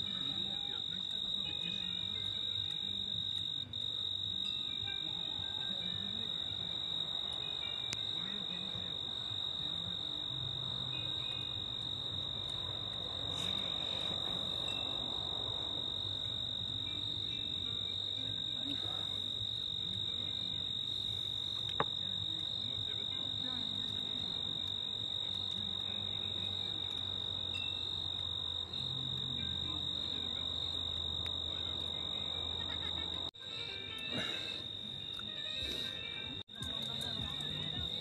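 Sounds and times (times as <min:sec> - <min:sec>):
crickets trilling: 0:00.0 - 0:38.0.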